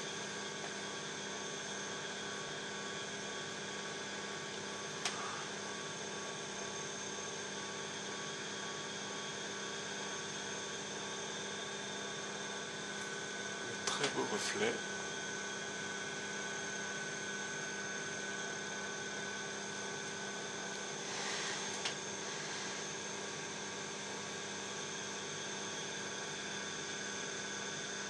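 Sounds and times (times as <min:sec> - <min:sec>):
steady mechanical hum: 0:00.0 - 0:28.0.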